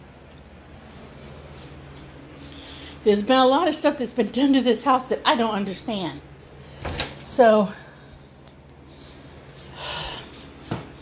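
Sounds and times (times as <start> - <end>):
woman exhaling: 9.7 - 10.4.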